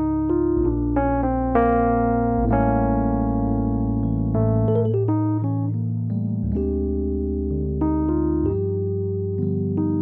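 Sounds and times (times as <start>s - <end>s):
electric piano music: 0.0s - 10.0s
held bass notes: 0.0s - 10.0s.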